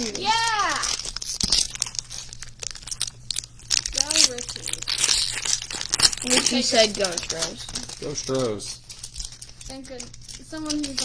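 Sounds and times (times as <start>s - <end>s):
plastic wrappers crinkling: 0.0s - 11.0s.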